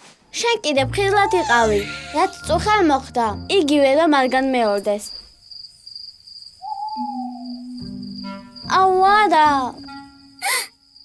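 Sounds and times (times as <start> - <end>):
crickets chirring: 1.2 - 11.0
owl hooting: 6.6 - 7.8.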